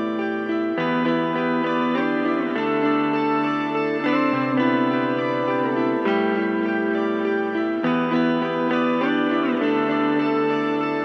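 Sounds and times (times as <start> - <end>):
sustained guitar chords: 0.0 - 11.0.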